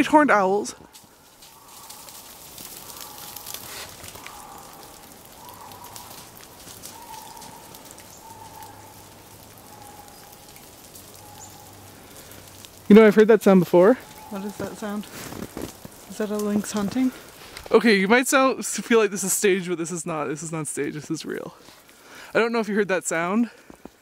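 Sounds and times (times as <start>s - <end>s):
snowmelt dripping: 0.0s - 24.0s
faint wavering animal call: 1.4s - 11.9s.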